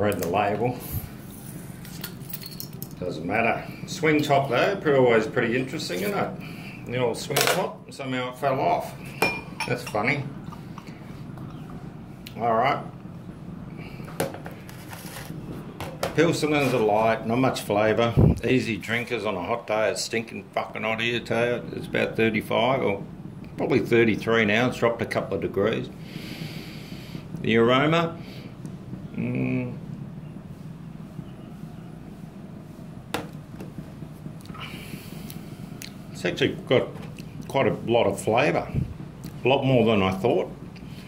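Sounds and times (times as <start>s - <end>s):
low background rumble: 15.3s - 41.0s.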